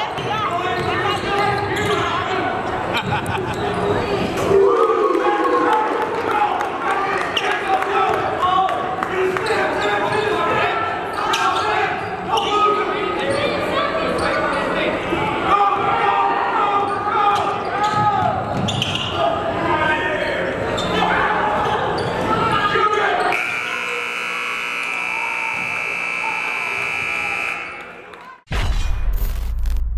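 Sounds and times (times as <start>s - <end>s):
scoreboard buzzer: 23.3s - 28.0s.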